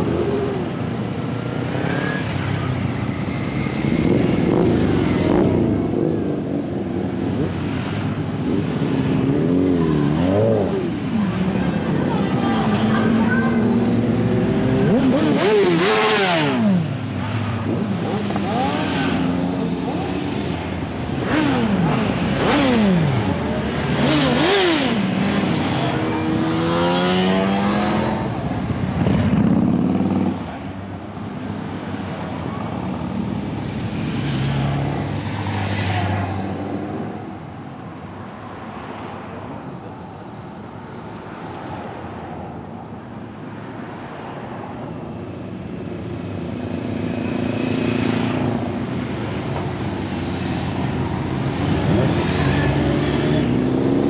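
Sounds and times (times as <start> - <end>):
motorcycles riding past: 0.0 - 37.6, 43.9 - 54.0.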